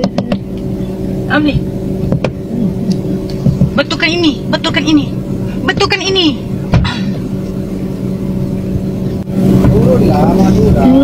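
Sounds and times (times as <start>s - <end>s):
car engine running: 0.0s - 11.0s.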